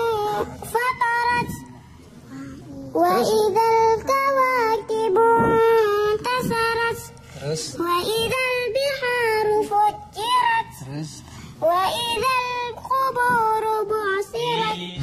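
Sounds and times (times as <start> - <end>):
child chanting: 0.0 - 15.0.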